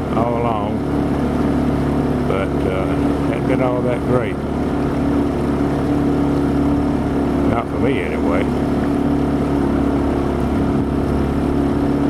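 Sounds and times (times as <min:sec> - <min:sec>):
outboard motor droning: 0:00.0 - 0:12.0.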